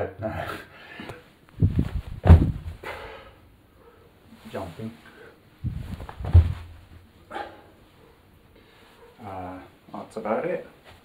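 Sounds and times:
heavy landing thud: 1.6s - 3.0s, 5.6s - 7.0s
person jumping on rug: 1.6s - 3.0s, 5.6s - 7.0s.

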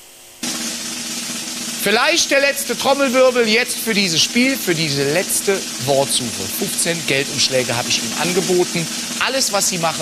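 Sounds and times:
snare drum roll: 0.4s - 10.0s.

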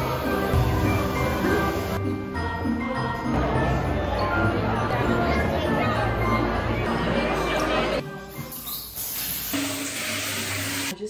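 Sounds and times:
shower spraying water: 0.0s - 2.0s, 8.5s - 11.0s
background music: 0.0s - 11.0s.

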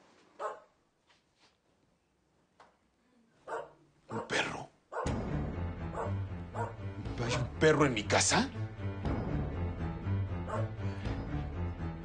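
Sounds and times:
dramatic background music: 5.1s - 12.0s.

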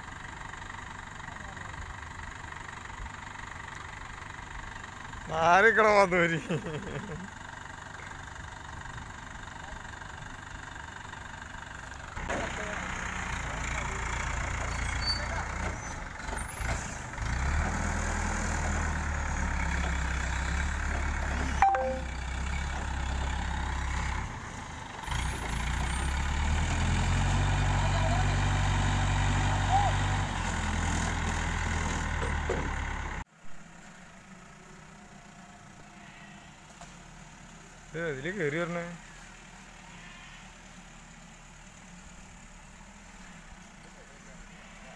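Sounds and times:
quiet outdoor background: 0.0s - 17.2s, 18.0s - 27.7s, 30.6s - 44.9s
crane diesel engine running: 0.0s - 36.0s.

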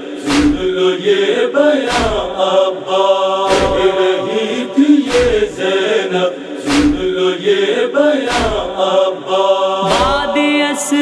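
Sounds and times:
male chorus chanting: 0.0s - 11.0s
deep chest-beating thuds: 0.3s - 0.7s, 6.7s - 7.1s.

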